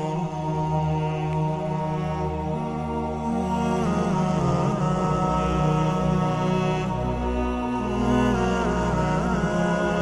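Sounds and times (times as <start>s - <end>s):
chant-like drone music: 0.0s - 10.0s.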